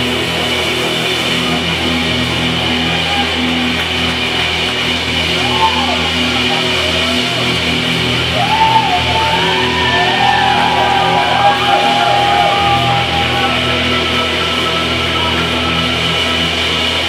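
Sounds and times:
rock band playing live: 0:05.5 - 0:17.0.

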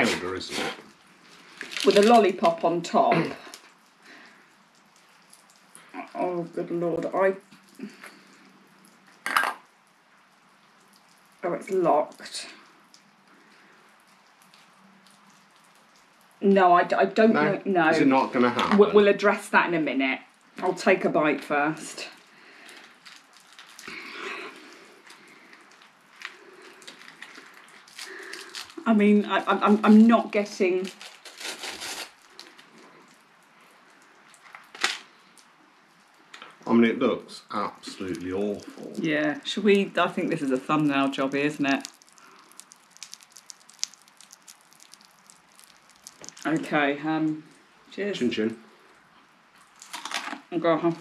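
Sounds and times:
small clicks and ticks: 0:03.5 - 0:06.2, 0:07.4 - 0:16.4, 0:22.2 - 0:28.7, 0:41.4 - 0:46.6, 0:49.6 - 0:50.2
pickle crunching while chewed: 0:22.7 - 0:28.8, 0:30.9 - 0:33.2, 0:41.6 - 0:46.5, 0:49.6 - 0:50.4.

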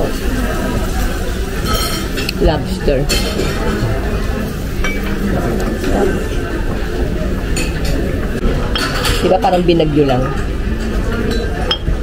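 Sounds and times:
background chatter: 0:00.0 - 0:12.0
dishes and cutlery clinking: 0:01.5 - 0:12.0.

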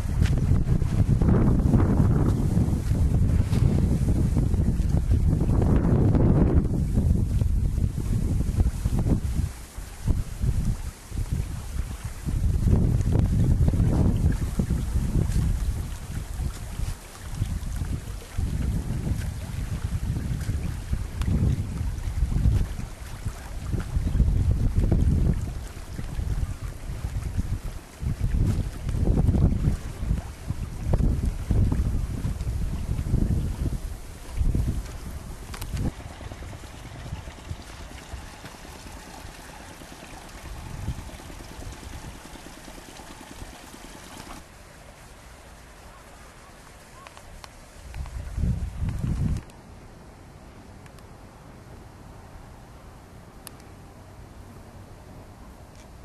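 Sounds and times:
wind buffeting microphone: 0:00.0 - 0:44.5, 0:47.3 - 0:49.5.

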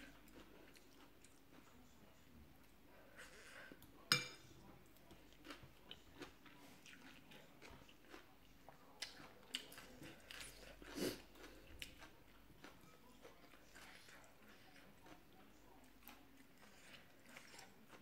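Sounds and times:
chewing noodles: 0:00.0 - 0:03.8, 0:04.8 - 0:18.0.

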